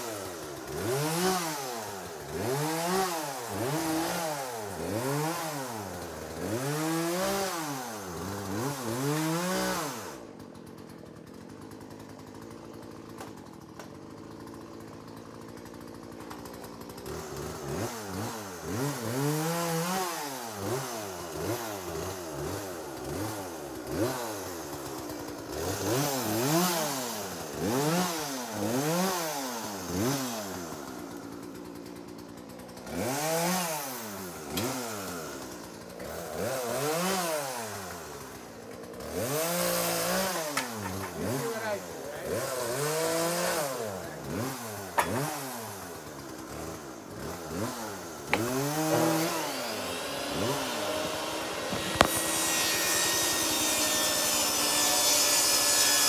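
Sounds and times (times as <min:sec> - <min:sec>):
chainsaw engine revving: 0:00.0 - 0:56.0.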